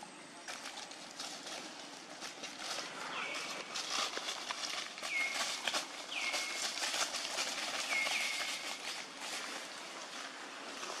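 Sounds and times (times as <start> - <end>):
crackles of feet in dry leaves: 0.4 - 11.0.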